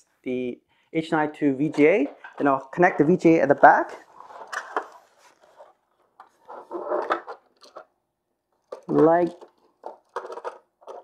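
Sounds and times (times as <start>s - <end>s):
cable scraping against plastic: 1.6s - 7.9s, 8.6s - 11.0s.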